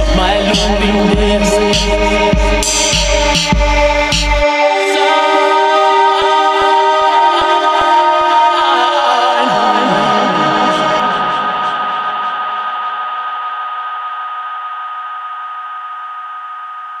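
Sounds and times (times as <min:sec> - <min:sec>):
electronic drum beat: 0:00.0 - 0:04.5
low synth notes stepping down: 0:00.0 - 0:04.5
held synth chord: 0:00.0 - 0:13.6.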